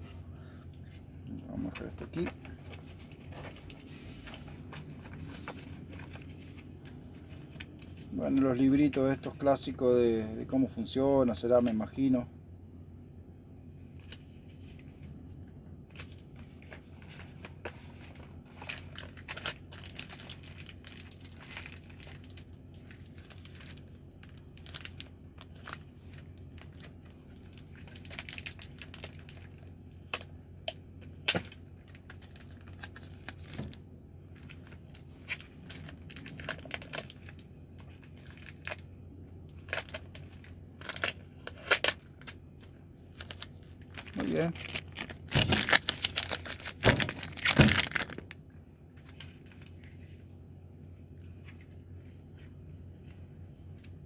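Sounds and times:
steady low hum: 0.0s - 54.0s
paper and plastic rustling: 0.9s - 9.8s, 15.9s - 30.3s, 31.0s - 38.8s, 39.5s - 50.3s.

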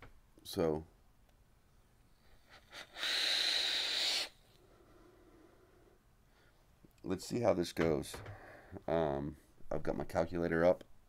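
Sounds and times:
faint breath: 2.2s - 6.7s, 8.2s - 8.9s
airy hiss of vape drag: 2.5s - 4.4s.

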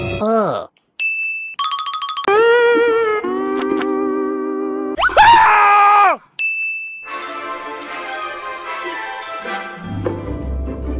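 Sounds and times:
loud high-pitched shout: 5.0s - 6.2s
steady ding tone: 6.4s - 7.1s.

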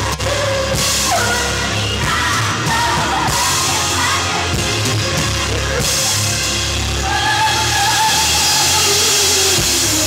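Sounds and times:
amplified rock band playing live: 0.0s - 10.0s
drum kit and cymbals: 0.0s - 10.0s.

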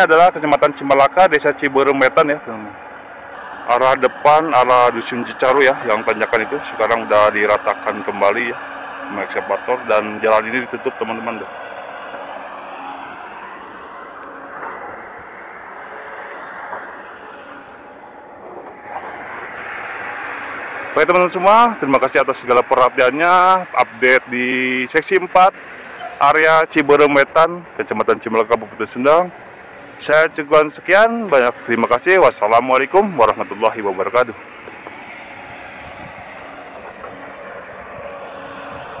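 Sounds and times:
distant engine drone: 0.0s - 39.0s
outdoor background noise: 0.0s - 39.0s.

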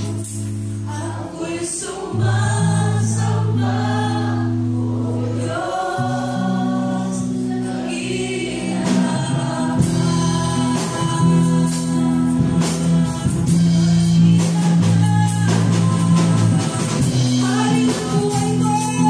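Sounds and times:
band playing: 0.0s - 1.3s
electric bass low notes: 0.0s - 19.0s
voices singing along: 0.0s - 19.0s
woman singing into microphone: 0.8s - 19.0s.

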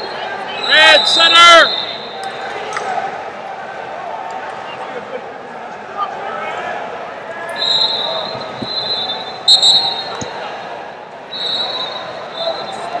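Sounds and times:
referee whistles: 0.0s - 2.4s, 7.5s - 10.3s, 11.3s - 13.0s
crowd chatter: 0.0s - 13.0s.

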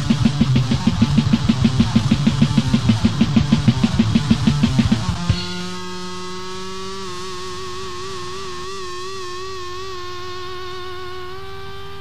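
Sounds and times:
band playing: 0.0s - 5.9s
electric guitar ringing note: 0.0s - 6.1s.

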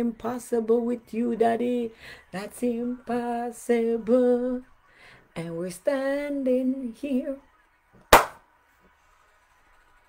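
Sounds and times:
hand clap: 8.1s - 8.4s.

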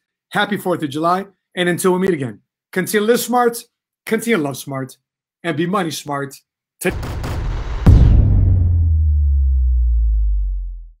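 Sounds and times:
deep low boom: 6.9s - 11.0s.

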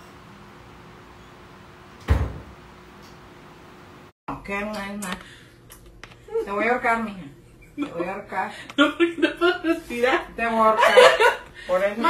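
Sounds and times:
heavy thump: 2.1s - 2.6s.

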